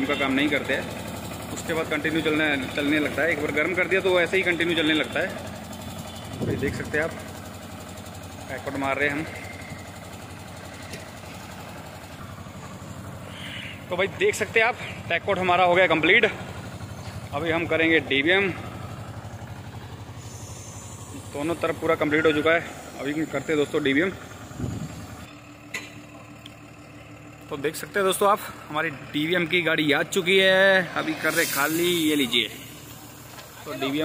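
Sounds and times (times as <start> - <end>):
truck engine running: 0.0 - 34.0.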